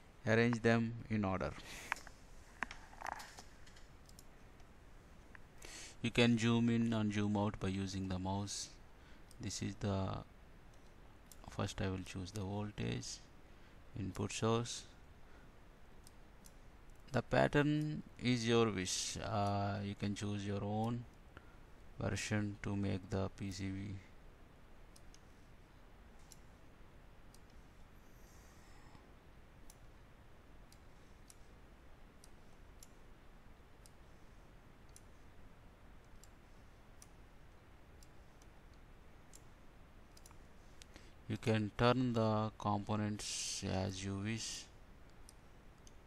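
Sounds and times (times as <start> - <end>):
low steady room hum: 0.0 - 46.0
computer mouse clicks: 1.9 - 4.7, 10.7 - 12.5, 16.0 - 17.2, 24.9 - 25.4, 26.2 - 26.6, 27.2 - 28.6, 30.7 - 33.1, 33.8 - 35.3, 36.0 - 41.5, 45.1 - 46.0
faint computer mouse clicks: 1.9 - 4.7, 34.8 - 35.3, 36.0 - 36.4, 40.1 - 41.5.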